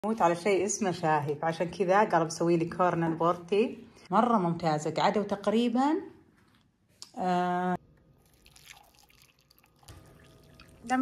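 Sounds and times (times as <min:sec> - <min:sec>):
faint drips: 0:08.2 - 0:11.0
water pouring into a mug: 0:08.2 - 0:11.0.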